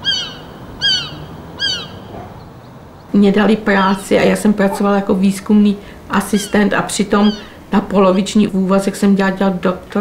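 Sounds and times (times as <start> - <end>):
bird calling: 0.0 - 5.0, 6.2 - 8.5.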